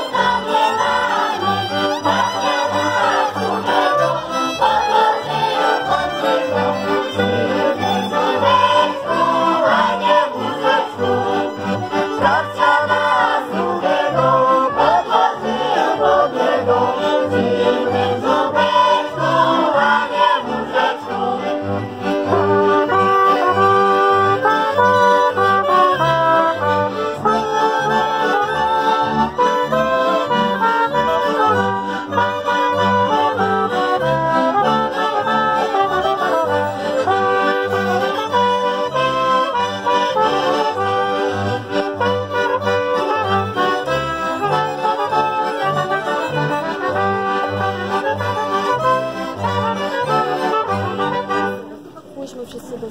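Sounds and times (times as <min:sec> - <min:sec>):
bowed bass line: 0:00.0 - 0:51.6
fiddle: 0:00.0 - 0:52.0
folk band playing: 0:00.0 - 0:52.8
accordion melody: 0:00.0 - 0:52.9.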